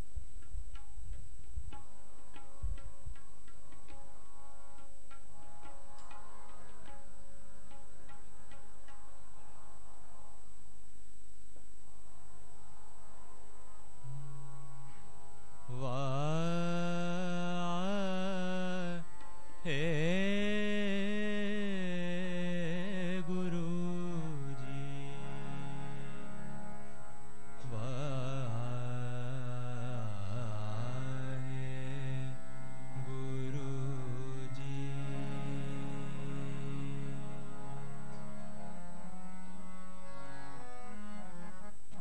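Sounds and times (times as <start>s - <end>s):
man singing devotional chant: 14.1s - 39.1s.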